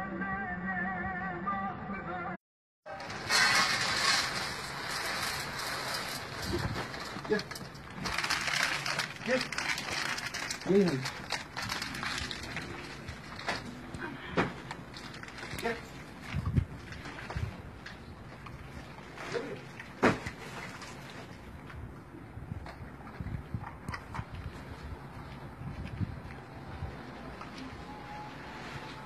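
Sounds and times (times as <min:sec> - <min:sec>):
music with man singing: 0:00.0 - 0:02.4
outdoor noise: 0:00.0 - 0:29.0.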